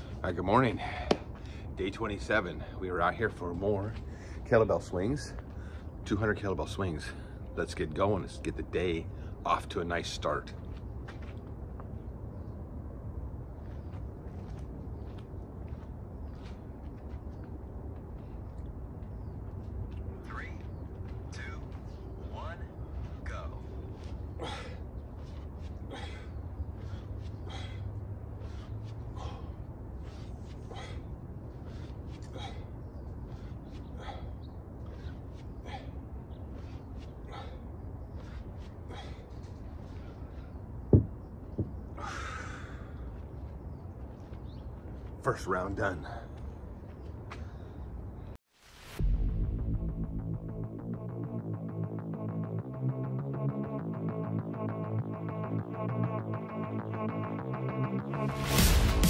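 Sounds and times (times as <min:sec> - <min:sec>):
rhythmic sharp breaths: 0:00.0 - 0:03.2, 0:03.8 - 0:04.6, 0:05.2 - 0:06.1, 0:17.8 - 0:40.9, 0:41.7 - 0:45.1, 0:45.9 - 0:48.4
small knock: 0:40.9 - 0:41.7.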